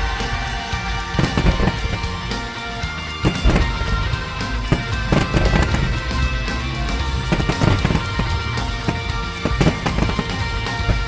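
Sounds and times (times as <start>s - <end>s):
fireworks popping and booming: 0.0s - 11.0s
music: 0.0s - 11.0s.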